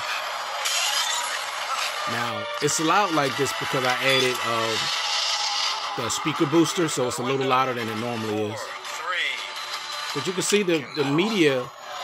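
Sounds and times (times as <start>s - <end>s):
action movie soundtrack on phone speaker: 0.0s - 12.0s.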